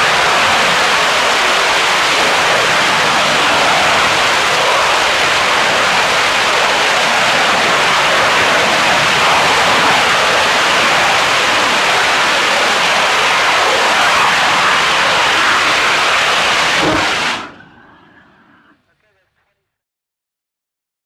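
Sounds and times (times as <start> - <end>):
rocket engine roaring: 0.0 - 19.2.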